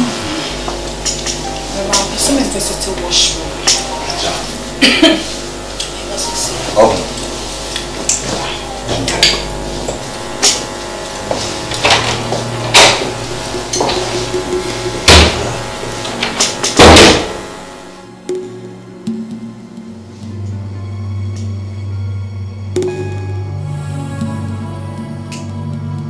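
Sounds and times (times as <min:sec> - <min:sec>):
door shutting with heavy thud: 0:11.3 - 0:17.6.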